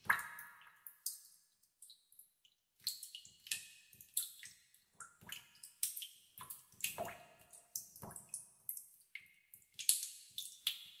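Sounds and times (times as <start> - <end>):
water dripping into a pool: 0.0 - 11.0.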